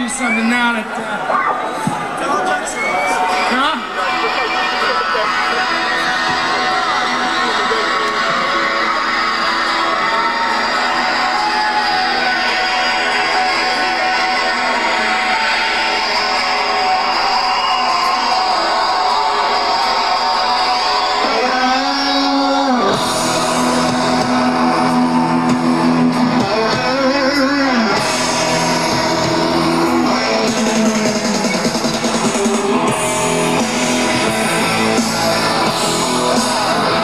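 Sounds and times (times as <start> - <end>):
live rock band playing: 20.6 - 37.0.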